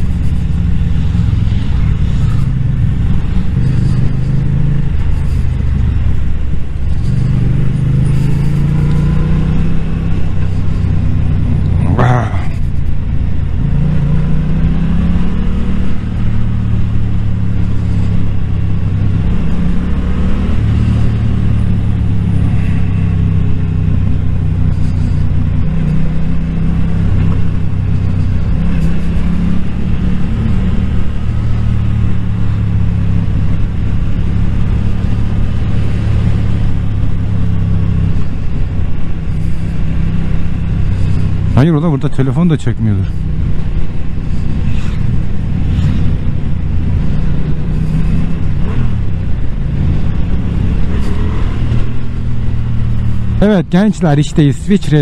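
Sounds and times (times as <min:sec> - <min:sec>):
wind noise: 0:00.0 - 0:41.6, 0:42.9 - 0:55.0
motorcycle engine revving: 0:00.0 - 0:55.0.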